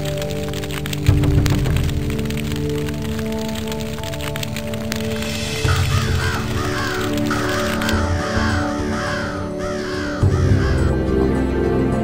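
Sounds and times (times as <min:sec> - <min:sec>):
brooding background music: 0:00.0 - 0:12.0
crows cawing: 0:05.3 - 0:11.5.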